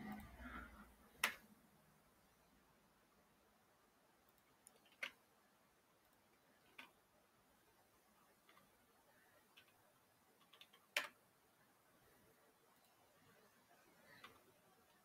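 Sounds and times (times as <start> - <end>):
computer mouse and keyboard clicks: 4.3 - 5.2, 6.6 - 7.0, 9.4 - 9.8, 10.4 - 11.2, 14.0 - 15.0.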